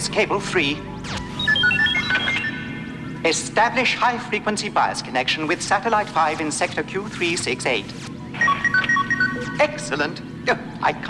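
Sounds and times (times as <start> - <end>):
short electronic beeps: 1.0 - 3.2, 8.4 - 9.9.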